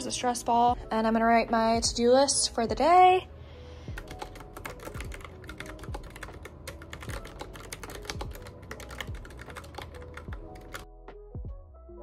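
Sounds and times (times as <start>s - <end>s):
fast typing on keyboard keys: 4.0s - 10.8s.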